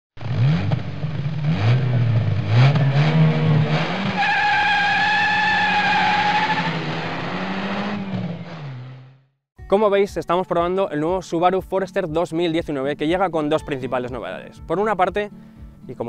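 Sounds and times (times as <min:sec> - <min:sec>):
car engine revving: 0:00.2 - 0:09.3
tyre squealing: 0:02.6 - 0:07.0.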